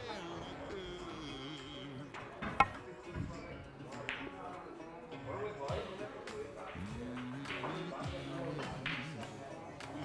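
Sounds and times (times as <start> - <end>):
background music with singer: 0.0 - 10.0
snooker balls clicking: 2.2 - 2.8.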